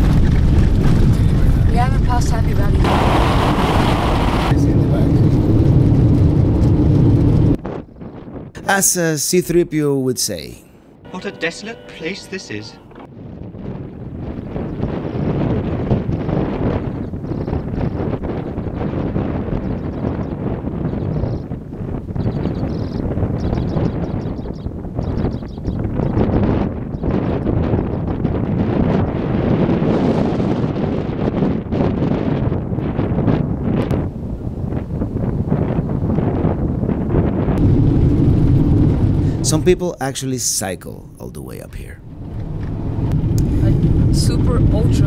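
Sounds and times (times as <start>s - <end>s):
vehicle rumbling on gravel road: 0.0s - 7.6s, 37.6s - 39.4s, 42.0s - 45.0s
wind buffeting microphone: 0.0s - 8.6s, 12.9s - 39.8s, 41.8s - 45.0s.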